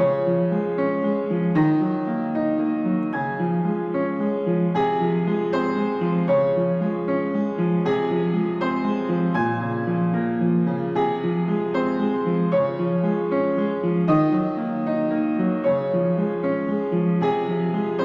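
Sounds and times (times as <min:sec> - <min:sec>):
piano playing: 0:00.0 - 0:18.0.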